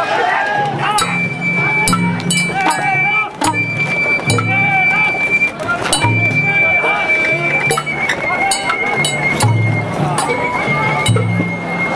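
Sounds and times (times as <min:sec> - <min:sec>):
crowd voices: 0:00.0 - 0:11.9
sharp metallic strikes: 0:01.0 - 0:05.1, 0:05.8 - 0:06.6, 0:07.6 - 0:11.6
bamboo flute steady note: 0:01.0 - 0:11.9.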